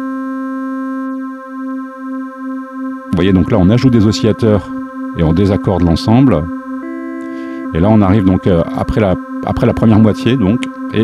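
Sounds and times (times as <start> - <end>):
synthesizer holding steady note: 0.0 - 11.0.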